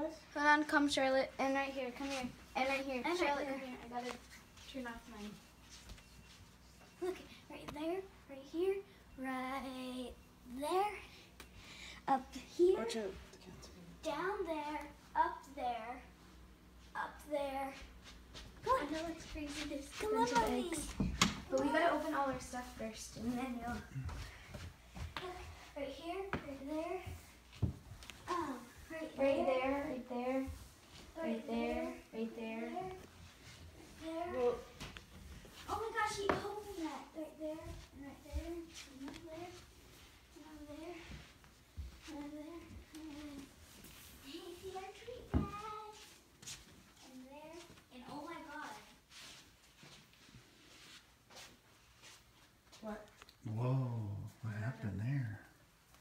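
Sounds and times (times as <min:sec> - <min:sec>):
child talking: 0:00.0 - 0:05.4, 0:07.0 - 0:11.2, 0:12.0 - 0:13.2, 0:14.0 - 0:16.1, 0:16.9 - 0:17.9, 0:18.6 - 0:24.1, 0:25.2 - 0:27.3, 0:28.3 - 0:30.6, 0:33.8 - 0:34.8, 0:35.7 - 0:39.7, 0:40.4 - 0:41.2, 0:42.0 - 0:43.5, 0:44.2 - 0:46.2, 0:47.0 - 0:49.0.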